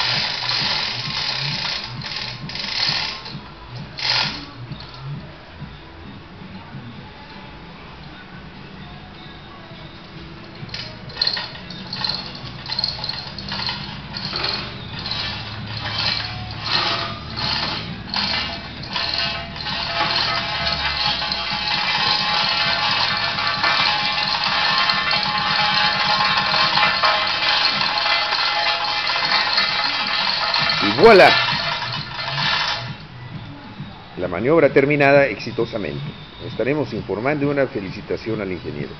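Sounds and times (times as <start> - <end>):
hoist chain clinking: 0.0 - 3.4, 4.0 - 5.0, 10.0 - 33.0.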